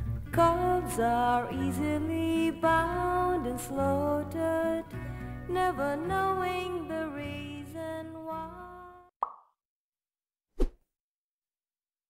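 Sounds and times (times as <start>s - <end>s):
bright pitched pop: 9.2s - 9.5s.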